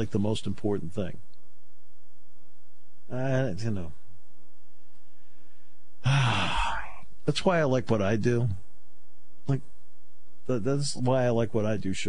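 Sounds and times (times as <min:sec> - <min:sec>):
man sighing: 0:06.0 - 0:07.0.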